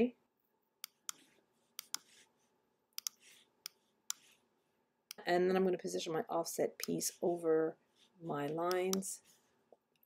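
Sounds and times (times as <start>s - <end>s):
computer mouse clicks: 0.8s - 2.2s, 2.9s - 4.3s, 8.6s - 9.1s.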